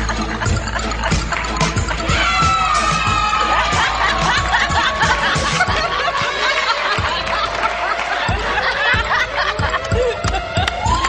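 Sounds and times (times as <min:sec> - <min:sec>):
dance music with steady beat: 0:00.0 - 0:11.0
people laughing: 0:00.0 - 0:11.0.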